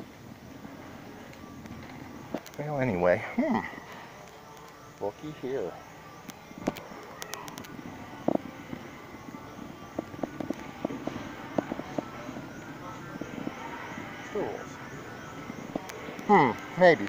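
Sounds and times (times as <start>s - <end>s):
store interior hum: 0.0s - 17.0s.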